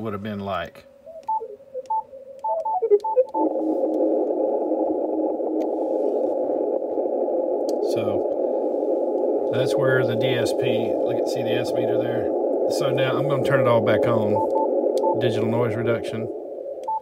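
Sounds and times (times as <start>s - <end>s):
radio band noise rushing: 1.4s - 17.0s
short beeps: 14.3s - 15.2s.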